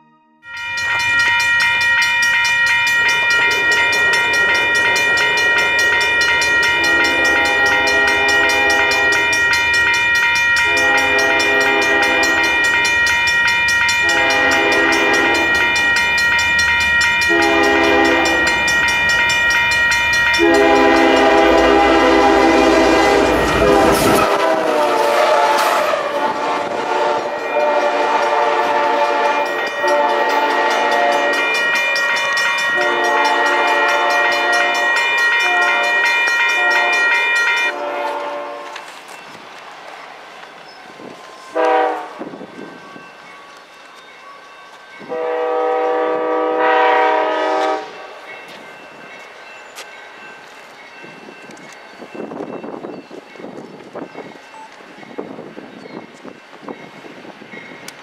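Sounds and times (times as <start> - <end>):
crossing bells ringing: 0.0 - 58.0
train rolling past: 0.5 - 58.0
locomotive rumble: 2.9 - 37.0
locomotive horn blasts: 6.7 - 9.4, 10.6 - 12.8, 14.0 - 15.8, 17.2 - 18.7, 20.3 - 31.6, 32.7 - 38.9, 41.5 - 42.3, 45.1 - 48.1.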